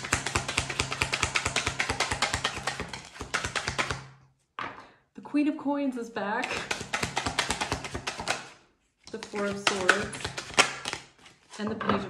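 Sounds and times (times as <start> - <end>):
cards being shuffled: 0.0 - 4.0, 6.4 - 11.6.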